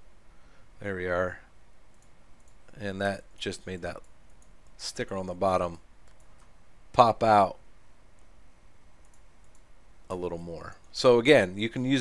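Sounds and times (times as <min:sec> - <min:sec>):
low room noise: 0:00.0 - 0:12.0
faint computer mouse clicks: 0:01.9 - 0:02.8, 0:04.0 - 0:04.8, 0:06.0 - 0:06.6, 0:09.0 - 0:09.7.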